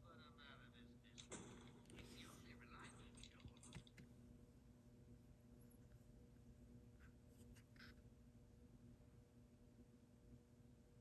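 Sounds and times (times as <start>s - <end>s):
faint whispering voice: 0.0s - 4.0s.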